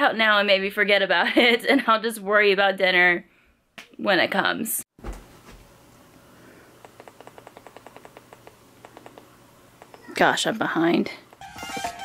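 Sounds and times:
fast small even clicks: 0:06.8 - 0:10.1.

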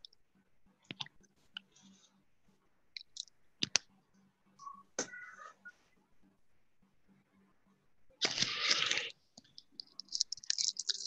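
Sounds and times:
faint low hum: 0:00.0 - 0:11.0
sharp clicks and taps: 0:03.0 - 0:03.9.

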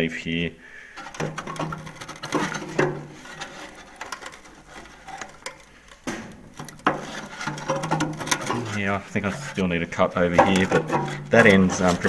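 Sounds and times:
metal panel clicks and scrapes: 0:01.0 - 0:12.0.

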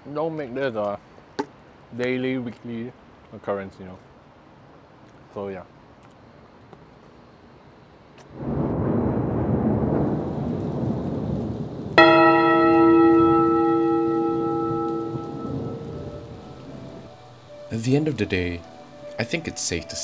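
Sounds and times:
rain: 0:08.0 - 0:20.0
low thunder rumble: 0:08.3 - 0:19.1
bell-like chime ringing: 0:12.0 - 0:20.0.

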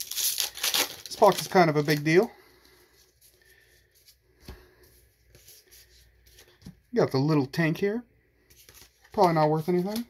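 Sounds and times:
cards rustling: 0:00.0 - 0:04.2, 0:08.5 - 0:10.0.

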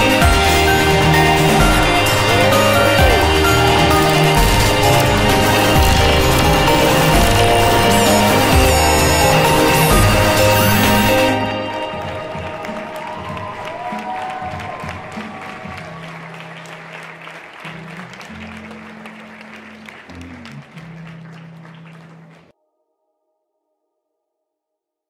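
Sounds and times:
song with sustained bass notes: 0:00.0 - 0:12.4, 0:16.0 - 0:22.5
audience applause: 0:00.0 - 0:22.5.

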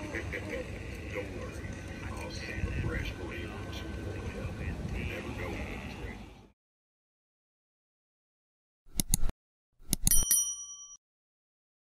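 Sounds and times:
mouse clicks: 0:08.9 - 0:09.3
bright bell ding: 0:10.0 - 0:11.0.

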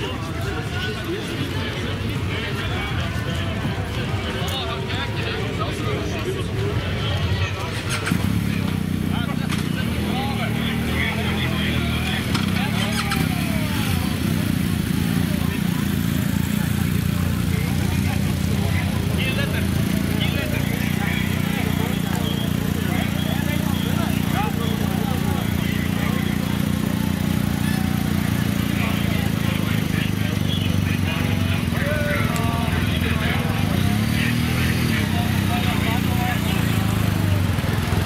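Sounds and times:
motorcycle and ambulance engines: 0:00.0 - 0:38.0
people talking: 0:00.0 - 0:38.0.

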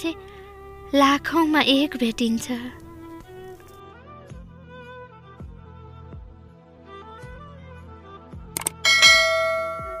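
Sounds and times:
soft background music: 0:00.0 - 0:10.0
mouse clicks: 0:08.6 - 0:08.8
bright bell chime: 0:08.9 - 0:10.0.

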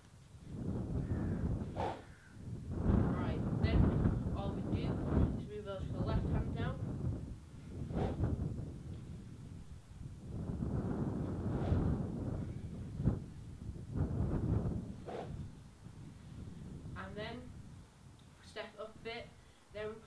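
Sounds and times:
wind buffeting microphone: 0:00.0 - 0:17.9.

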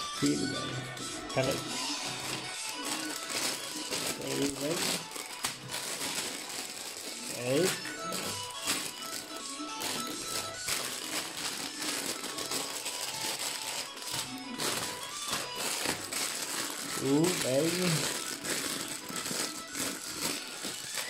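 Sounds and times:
plastic bag crinkling: 0:00.0 - 0:21.0
plastic pieces rattling in bags: 0:01.1 - 0:21.0
person humming: 0:16.8 - 0:18.7.

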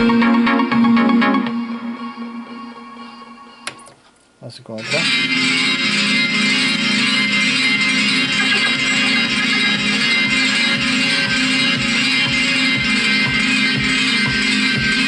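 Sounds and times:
guitar-led music: 0:00.0 - 0:03.9, 0:04.8 - 0:15.0
music from speakers: 0:00.0 - 0:03.9, 0:04.8 - 0:15.0.

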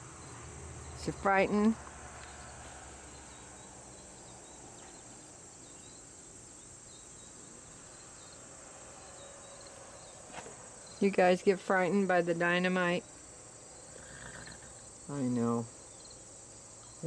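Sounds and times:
insects chirping: 0:00.0 - 0:17.0.

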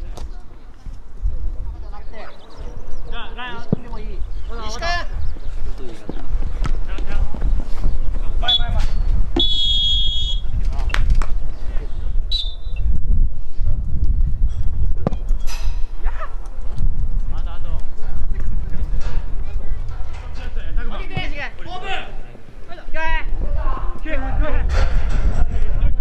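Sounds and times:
referee's whistle blast: 0:09.4 - 0:10.4, 0:12.3 - 0:12.8
players shouting: 0:21.0 - 0:24.4.

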